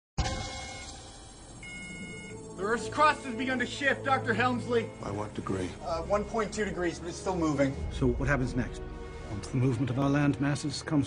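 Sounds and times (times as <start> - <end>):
high electronic chime tones: 0.2 - 3.0.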